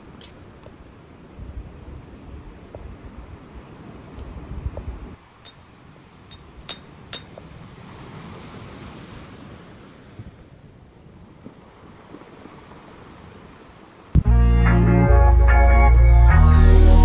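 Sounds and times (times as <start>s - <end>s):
wind on microphone: 0.0s - 5.3s
sea waves washing on shore: 0.0s - 14.2s.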